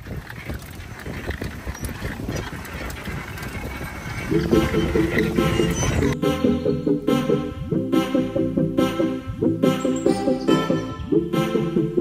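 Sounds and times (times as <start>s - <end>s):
pedal cart rolling on pavement: 0.0s - 6.2s.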